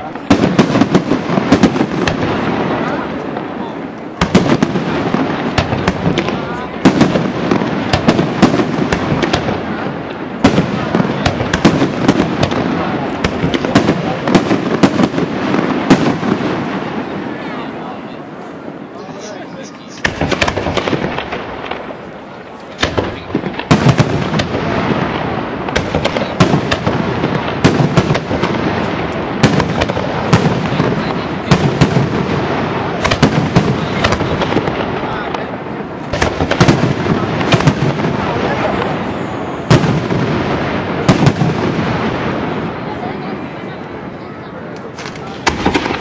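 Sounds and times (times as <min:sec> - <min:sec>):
firework shells bursting: 0:19.9 - 0:39.0, 0:44.8 - 0:46.0.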